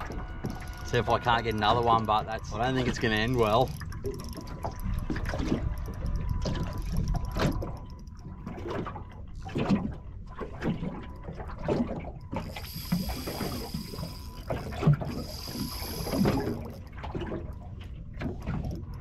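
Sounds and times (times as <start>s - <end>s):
water slapping against boat hull: 0.0s - 12.5s
wind rumbling on microphone: 0.0s - 19.0s
high steady whirr: 12.4s - 16.8s.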